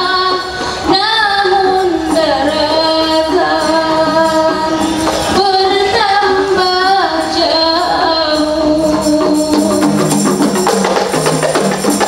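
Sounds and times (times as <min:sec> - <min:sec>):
woman singing: 0:00.0 - 0:10.4
frame drums: 0:00.0 - 0:12.0.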